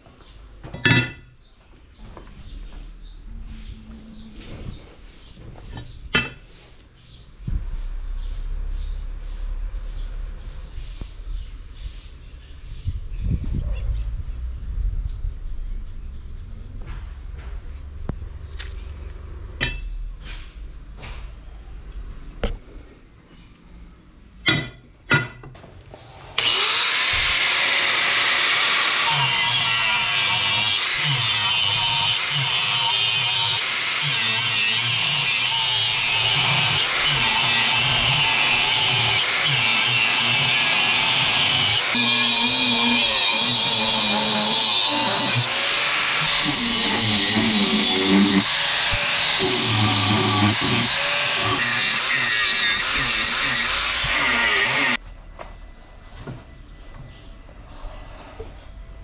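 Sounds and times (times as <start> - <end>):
angle grinder cutting steel: 26.4 - 55.0.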